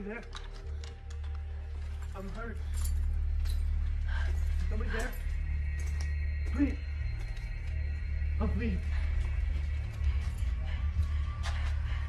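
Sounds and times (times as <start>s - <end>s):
low steady drone: 0.0s - 12.0s
metallic jingles: 1.8s - 7.5s.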